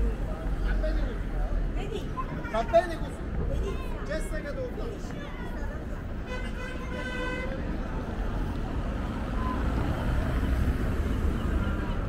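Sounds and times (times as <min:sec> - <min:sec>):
city street traffic rumble: 0:00.0 - 0:12.0.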